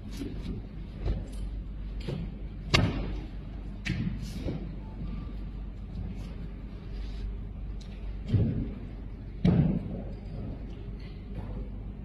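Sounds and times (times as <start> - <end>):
low rumble of large hall: 0.0 - 12.0.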